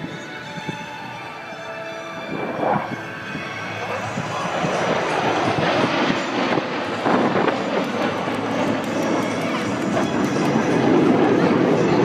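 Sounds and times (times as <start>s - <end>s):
jet engines flying overhead: 0.0s - 12.0s.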